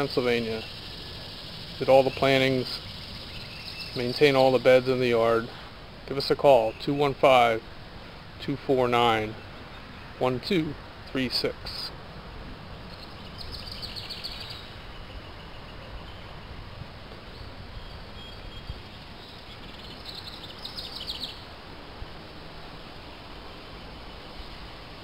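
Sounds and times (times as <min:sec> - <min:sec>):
songbird trilling: 0:00.0 - 0:05.4, 0:12.8 - 0:16.4, 0:17.3 - 0:21.6
outdoor background noise: 0:00.0 - 0:25.0.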